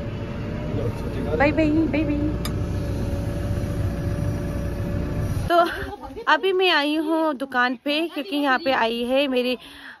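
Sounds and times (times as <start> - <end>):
dozer diesel engine droning: 0.0 - 5.6.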